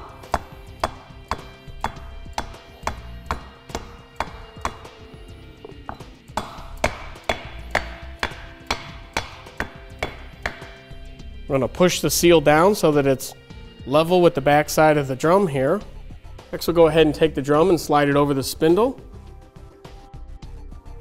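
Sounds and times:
hammer tapping wooden block: 0.0 - 5.0, 5.6 - 10.9
background music: 0.0 - 21.0.

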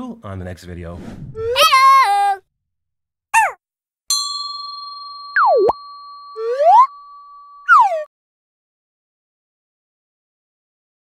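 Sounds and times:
cartoon bell ding: 4.1 - 8.1
cartoon pitch swoops: 6.4 - 6.9, 7.7 - 8.1.

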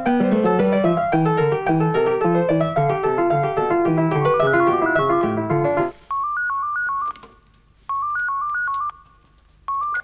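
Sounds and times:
electronic telephone ringtone: 4.3 - 5.4, 6.1 - 7.2, 7.9 - 9.0.

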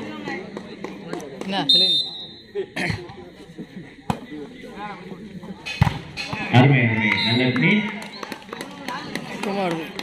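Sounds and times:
voices of players and spectators: 0.0 - 10.0.

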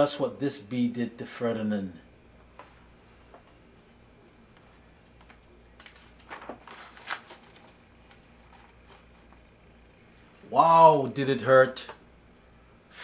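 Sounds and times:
book pages turning: 5.1 - 9.4.

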